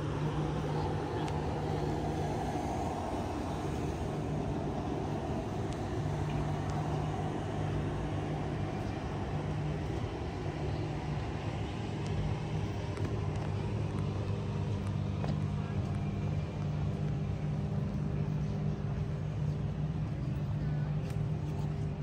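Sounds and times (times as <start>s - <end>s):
motor traffic engine hum: 0.0s - 22.0s.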